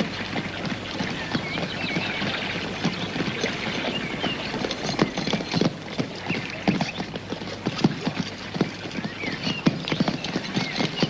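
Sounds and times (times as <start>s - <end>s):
horse hooves on dirt: 0.0s - 11.0s.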